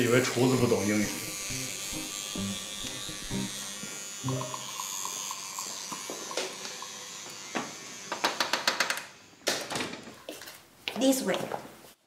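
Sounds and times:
electric toothbrush buzzing: 0.0s - 9.4s.

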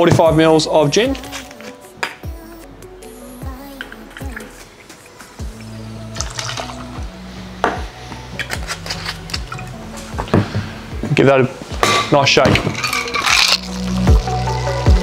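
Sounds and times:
background music with beat: 0.0s - 15.0s.

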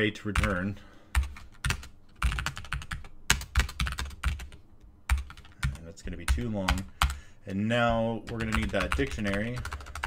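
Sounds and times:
typing on computer keyboard: 0.4s - 7.2s, 8.3s - 10.0s.

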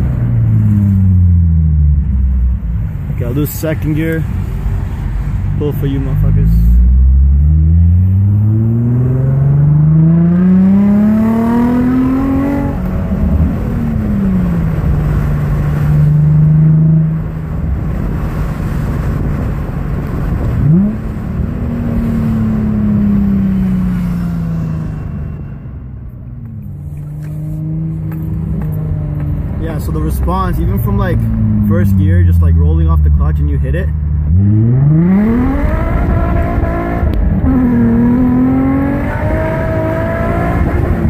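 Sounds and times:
car engine accelerating hard: 5.8s - 25.6s, 26.3s - 41.0s.

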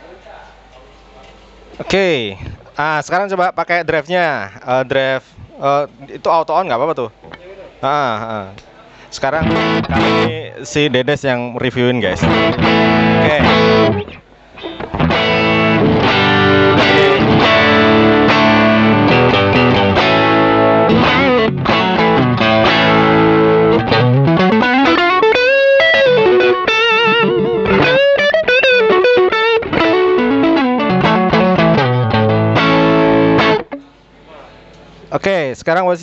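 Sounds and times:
overdriven electric guitar: 9.4s - 10.4s, 12.2s - 34.0s.

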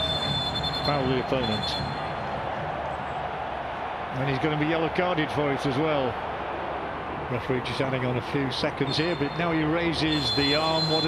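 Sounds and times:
football ground background noise: 0.0s - 11.0s.

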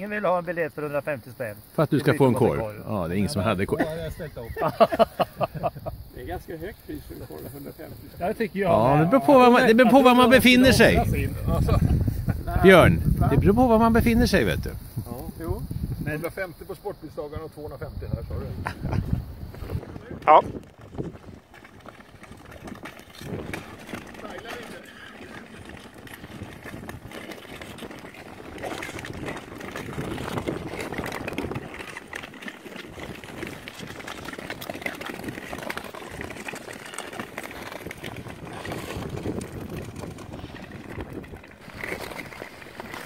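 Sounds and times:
skates scraping over ice: 0.0s - 43.0s
wind on microphone: 2.5s - 43.0s.

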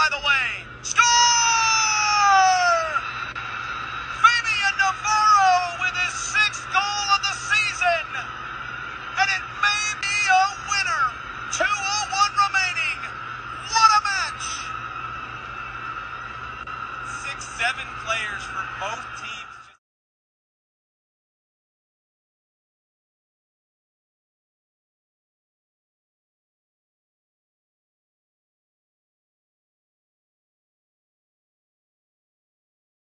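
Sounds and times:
excited high-pitched shouts and shrieks: 0.0s - 3.2s, 4.2s - 8.3s, 9.2s - 14.7s
low hum: 0.0s - 19.8s
steady high whine: 0.0s - 19.8s.

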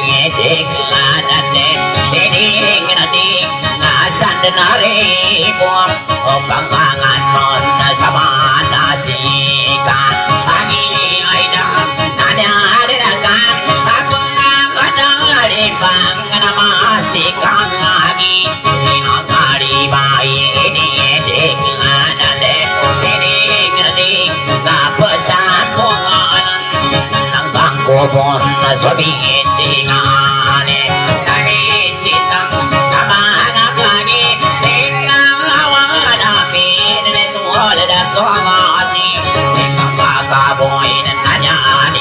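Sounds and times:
plucked lute melody: 0.0s - 42.0s.

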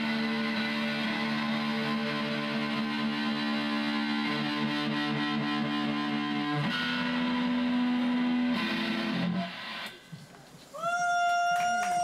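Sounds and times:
distorted electric guitar chords: 0.0s - 10.2s.

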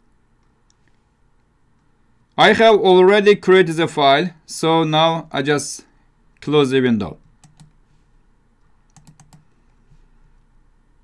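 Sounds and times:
mouse and keyboard clicks: 8.9s - 9.5s.

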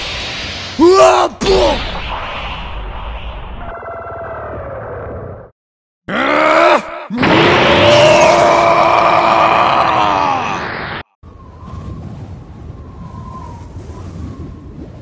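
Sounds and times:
rumbling energy clash: 0.0s - 3.8s
man screaming: 0.8s - 1.8s, 6.1s - 10.8s
man yelling: 0.8s - 1.8s, 6.1s - 10.6s.

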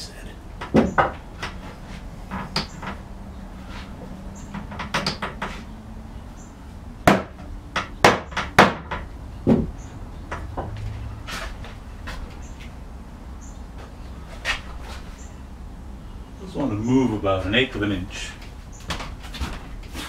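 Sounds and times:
wooden knocks on cupboard frame: 0.6s - 1.6s, 7.1s - 10.8s.

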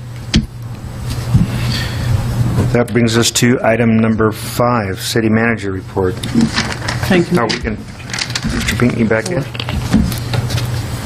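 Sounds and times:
room noise: 0.0s - 11.0s
steady low hum: 0.0s - 11.0s.

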